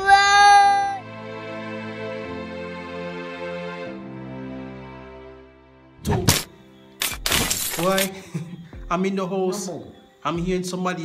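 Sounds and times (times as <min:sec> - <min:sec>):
sharp crack: 0:06.0 - 0:08.1.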